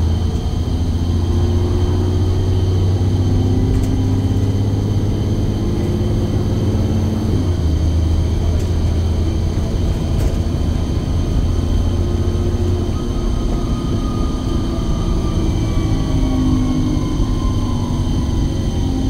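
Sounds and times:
bus engine drone: 0.0 - 19.0.

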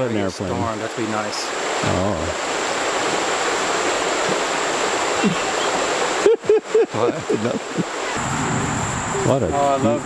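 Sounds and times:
creek water rushing over stones: 0.0 - 10.0.

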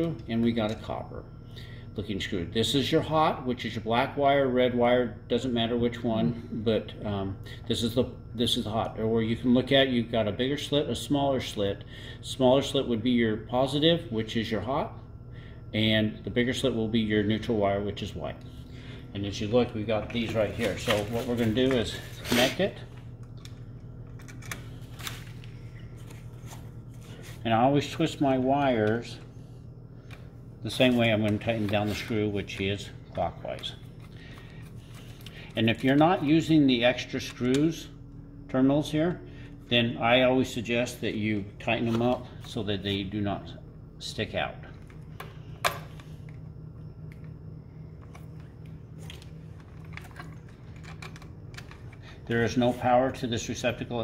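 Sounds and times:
steady low hum: 0.0 - 54.0
clicks and rustles of handling wire: 20.0 - 27.4, 37.2 - 37.7, 44.8 - 52.4.

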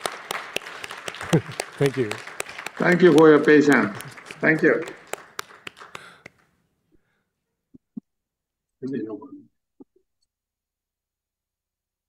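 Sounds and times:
audience applause: 0.0 - 6.4.

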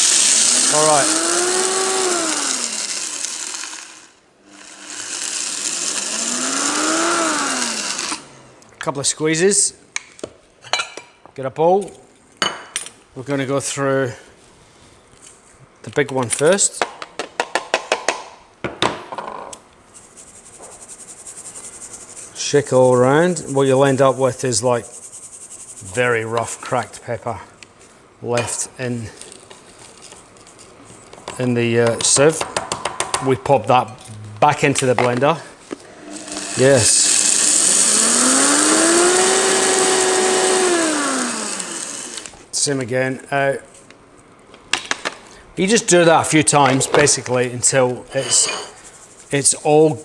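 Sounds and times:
blender motor grinding peppercorns: 0.0 - 8.5, 35.8 - 42.4.

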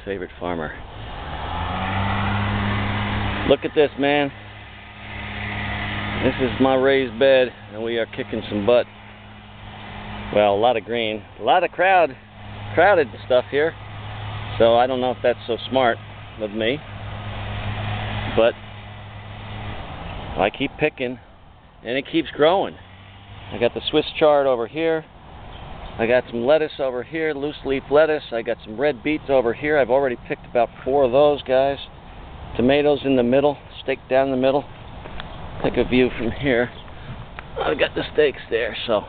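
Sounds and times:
engine humming: 0.0 - 39.0.

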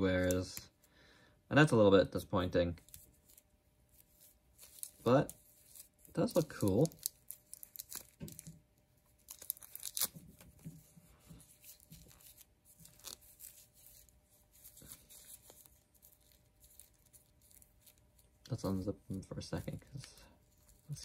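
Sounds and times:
cloth rustling: 2.8 - 21.0.

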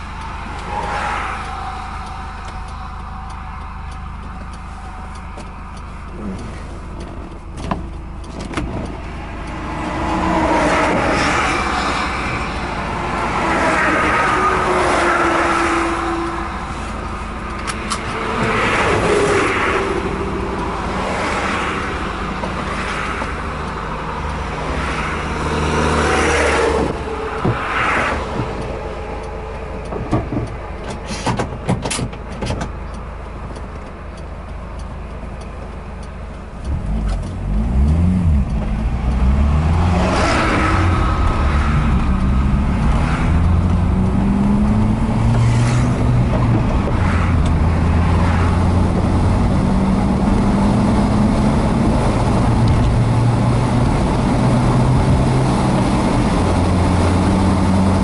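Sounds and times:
car engine accelerating: 0.0 - 58.0
road and tyre noise: 0.0 - 58.0
vehicles rushing past: 0.0 - 58.0.

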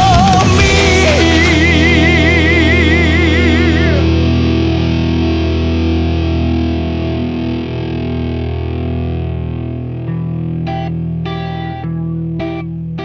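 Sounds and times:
distorted electric guitars and bass: 0.0 - 13.0.

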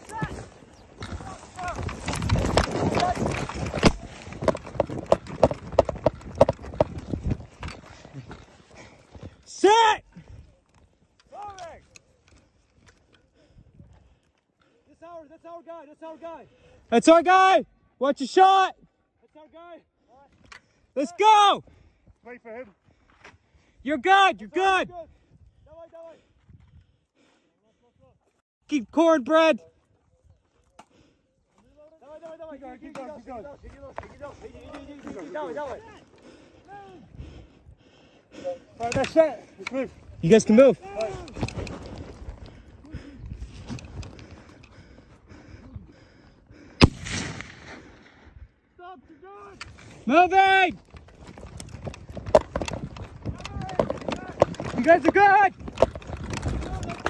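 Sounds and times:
low rustling of movement: 0.0 - 9.5
sharp gunshot ringing: 46.8 - 48.2.

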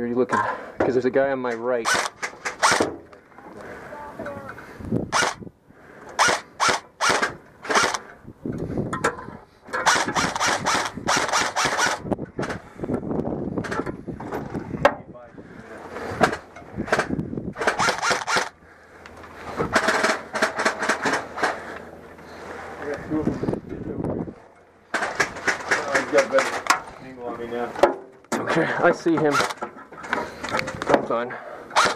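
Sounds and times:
airsoft gun full-auto bursts: 1.8 - 2.9, 5.1 - 5.4, 6.2 - 8.0, 9.8 - 12.1, 17.6 - 18.6, 29.3 - 29.6.

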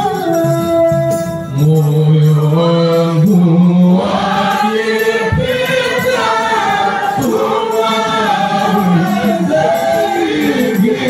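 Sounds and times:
men chanting into microphones: 1.5 - 11.0.

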